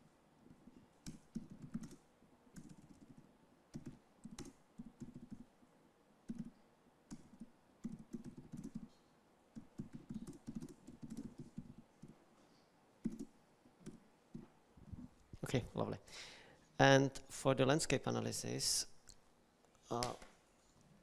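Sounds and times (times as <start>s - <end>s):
faint typing on laptop keyboard: 0.4s - 15.2s.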